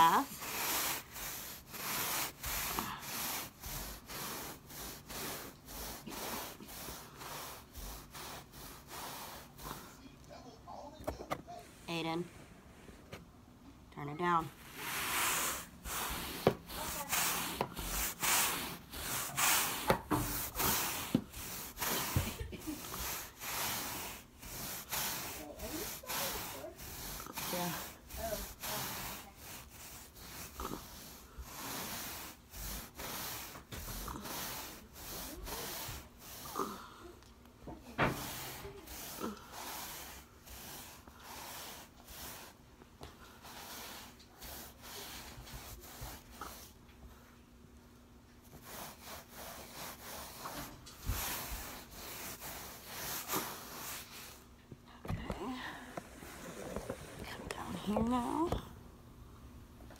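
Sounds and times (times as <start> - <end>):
scrub brush scrubbing a wet rug: 0.0 - 10.0, 14.2 - 36.8, 37.7 - 42.6, 43.3 - 46.8, 48.4 - 54.5.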